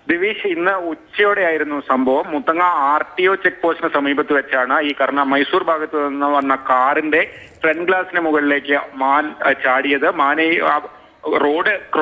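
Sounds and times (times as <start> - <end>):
news reader speaking: 0.0 - 12.0.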